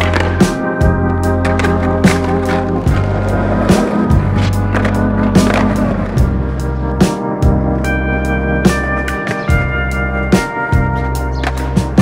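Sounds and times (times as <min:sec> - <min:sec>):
organ and bass music: 0:00.0 - 0:12.0
skateboard wheels rolling on asphalt: 0:00.0 - 0:12.0.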